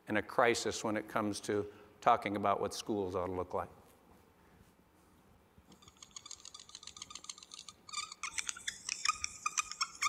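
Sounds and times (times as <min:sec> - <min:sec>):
marker squeaking on a whiteboard: 0:05.7 - 0:10.0.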